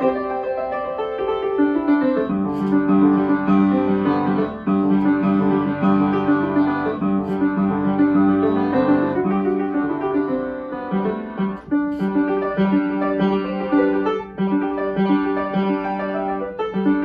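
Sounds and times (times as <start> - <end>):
upright piano playing: 0.0 - 17.0.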